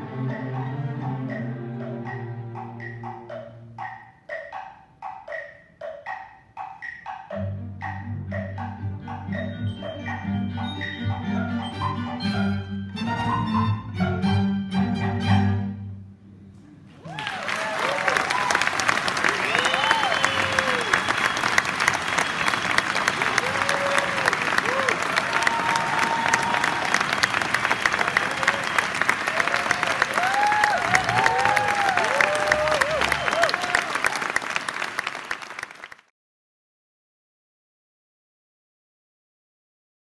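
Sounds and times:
audience applauding: 16.9s - 36.1s
cheers and whoops: 17.0s - 34.4s.

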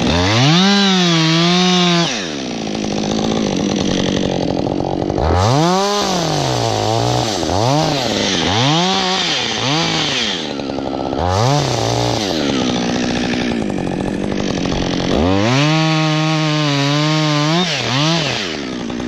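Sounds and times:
chainsaw cutting wood: 0.0s - 19.0s.

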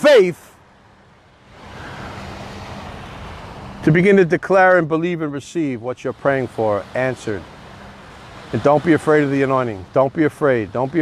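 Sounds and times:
ocean surf rushing: 0.0s - 11.0s.

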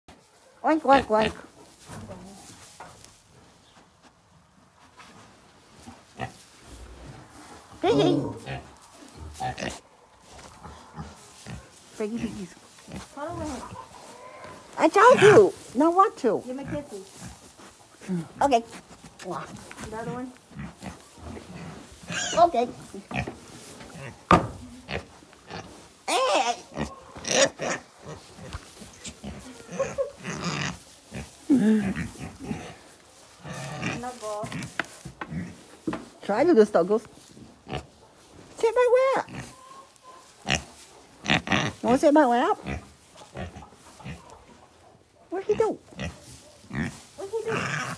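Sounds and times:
pig grunting: 6.2s - 9.8s, 20.0s - 23.3s, 23.9s - 34.7s, 45.4s - 47.9s.

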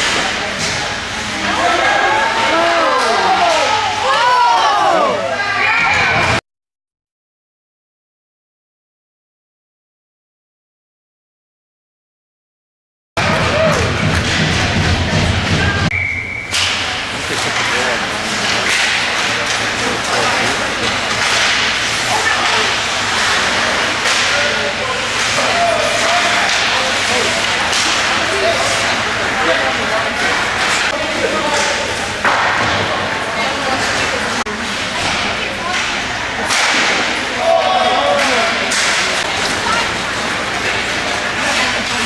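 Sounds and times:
clacks of sticks and puck: 13.2s - 15.6s, 16.5s - 33.1s, 33.7s - 37.2s, 38.1s - 42.0s.

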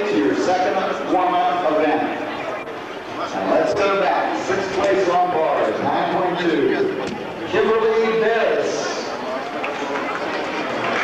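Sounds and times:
indistinct voices talking: 0.0s - 10.8s.

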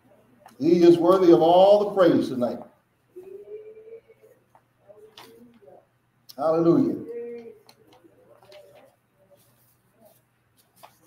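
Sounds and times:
faint murmured voices: 3.1s - 11.0s.

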